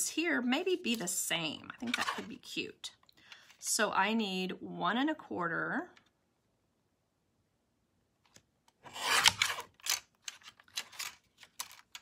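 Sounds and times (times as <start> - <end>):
paper trimmer blade rasping: 8.9 - 9.7.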